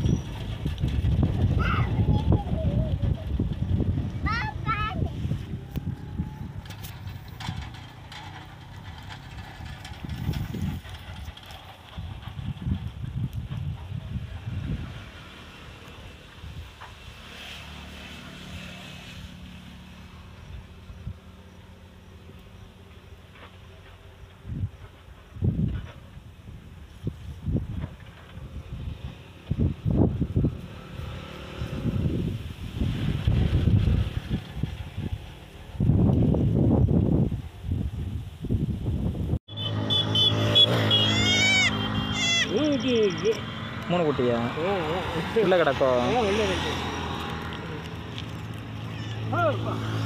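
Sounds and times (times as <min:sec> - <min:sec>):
faint outdoor background noise: 0:00.0 - 0:50.0.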